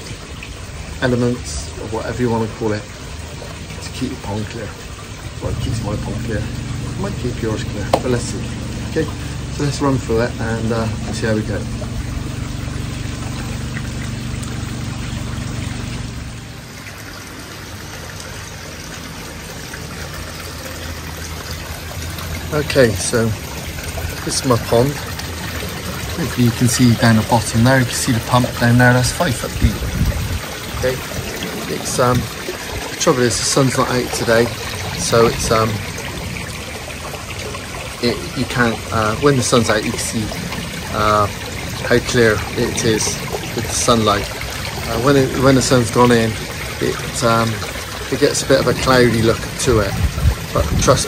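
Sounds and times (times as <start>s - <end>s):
water trickling and splashing: 0.0s - 51.0s
low hum: 4.4s - 17.1s.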